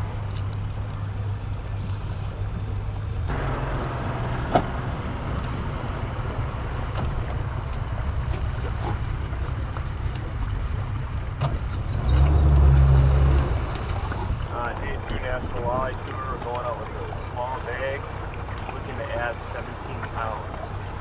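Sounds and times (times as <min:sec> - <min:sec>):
outboard motor running: 0:00.0 - 0:21.0.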